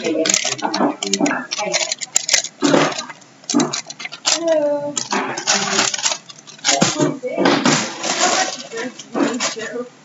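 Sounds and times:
puzzle pieces clicking: 0.0 - 7.0
puzzle pieces rustling clatter: 0.0 - 9.8.

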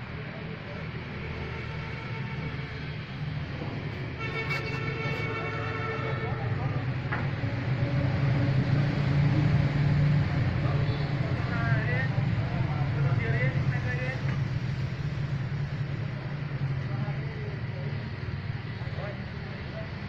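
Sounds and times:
people talking in background: 3.6 - 20.0.

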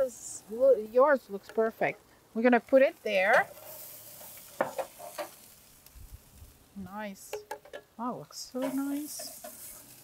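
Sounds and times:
fish frying in butter: 1.4 - 6.6, 8.5 - 10.0.

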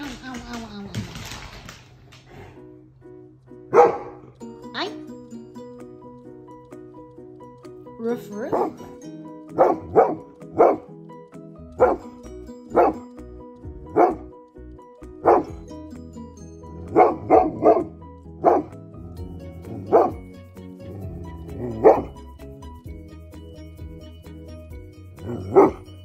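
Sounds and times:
large dog barking: 3.7 - 4.2, 8.5 - 8.9, 9.6 - 10.9, 11.8 - 12.1, 12.7 - 13.0, 13.9 - 14.3, 15.2 - 15.5, 16.8 - 18.8, 19.6 - 20.2, 21.5 - 22.2, 25.2 - 25.9.

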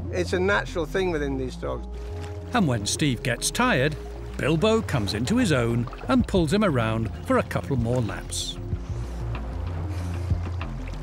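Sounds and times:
low sustained music: 0.0 - 11.0
water splashing: 1.9 - 11.0.

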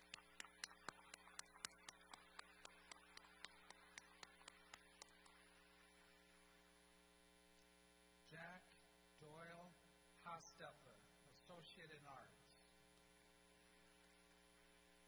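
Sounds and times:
hand clapping: 0.0 - 5.4
faint electrical hum: 0.0 - 15.0.

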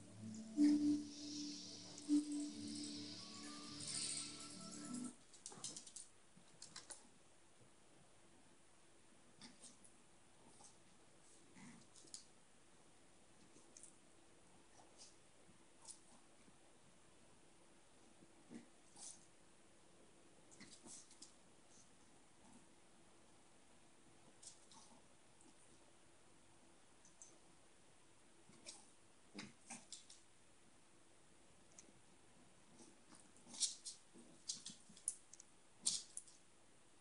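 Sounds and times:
dog claws clicking on tile: 5.4 - 7.0, 33.1 - 36.4.

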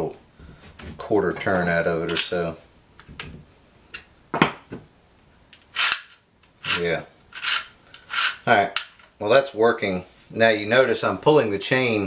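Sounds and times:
saw chain rasping along bar: 7.4 - 8.4.

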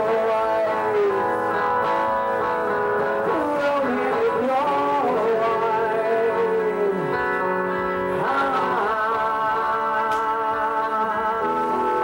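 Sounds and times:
electric guitars ringing: 0.0 - 12.0
live rock band playing: 0.0 - 12.0.

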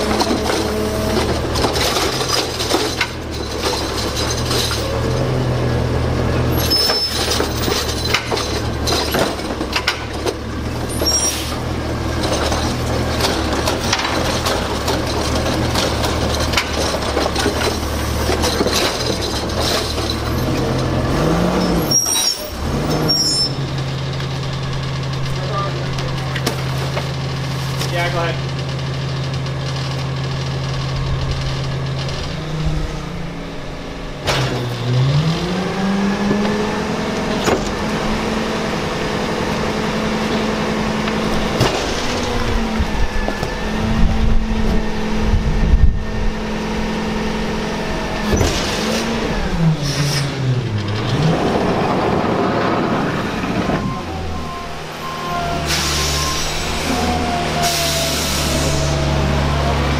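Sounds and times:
packer hydraulics compacting: 0.0 - 45.4, 46.6 - 59.9
vehicle engine running: 0.0 - 55.1
garbage truck engine idling and revving: 0.0 - 59.9.

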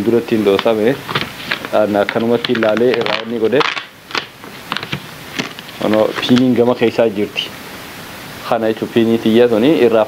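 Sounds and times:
man speaking: 0.0 - 1.0, 1.7 - 3.7, 5.8 - 7.6, 8.4 - 10.0
steady hiss: 0.0 - 10.0.

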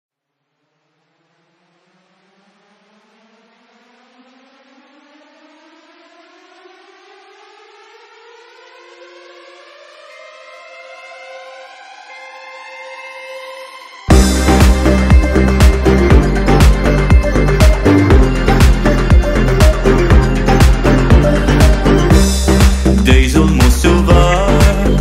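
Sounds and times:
rising synth tone: 1.5 - 25.0
held synth notes: 8.2 - 25.0.

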